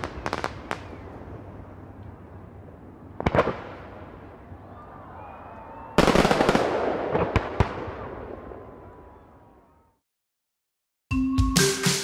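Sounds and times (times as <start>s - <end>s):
faint firework whistles: 0.0s - 1.2s
fireworks bangs: 0.0s - 2.2s, 3.1s - 9.0s
fireworks crackling: 0.0s - 4.5s, 6.0s - 8.4s.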